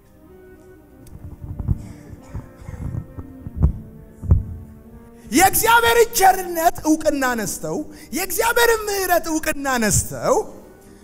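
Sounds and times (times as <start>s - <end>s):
soft keyboard chords: 0.0s - 11.0s
low thuds: 1.1s - 4.8s
man preaching loudly: 5.2s - 10.7s.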